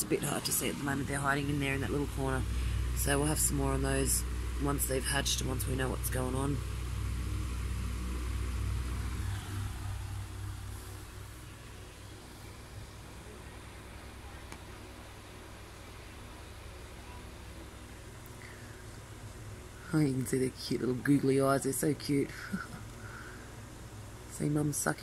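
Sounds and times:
faint hiss: 0.0s - 25.0s
low mechanical hum: 0.0s - 25.0s.

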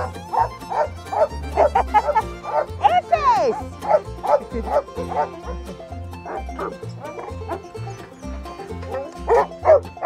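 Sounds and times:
faint dog barking: 0.0s - 2.7s, 9.0s - 9.8s.

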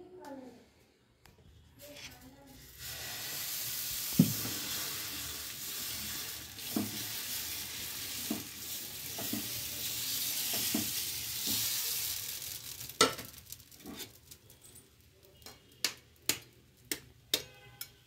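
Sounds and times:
batter sizzling on a griddle: 1.8s - 17.9s.

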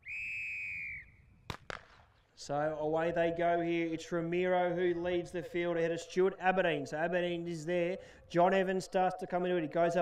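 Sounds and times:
sharp cracks: 1.5s - 2.2s.

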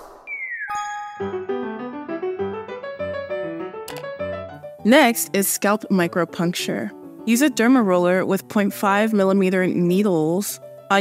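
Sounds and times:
light background music: 0.3s - 11.0s.

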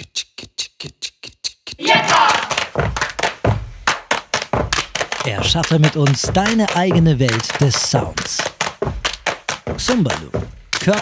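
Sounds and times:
hand claps and body slaps: 1.8s - 11.0s.

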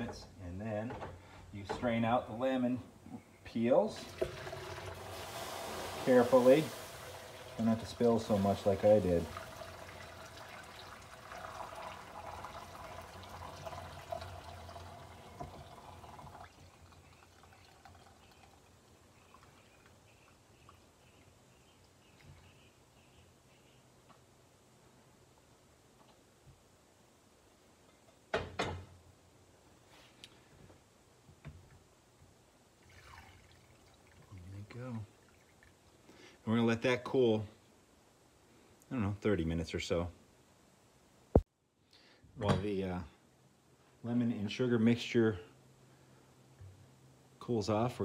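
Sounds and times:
water pouring through a strainer: 3.9s - 20.0s, 32.8s - 35.9s
syrup trickling and dripping: 3.9s - 22.4s, 32.8s - 36.4s.

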